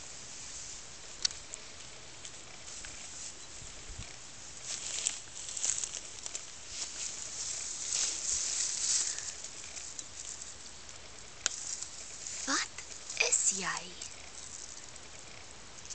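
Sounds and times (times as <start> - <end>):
tall grass rustling: 0.0 - 15.9.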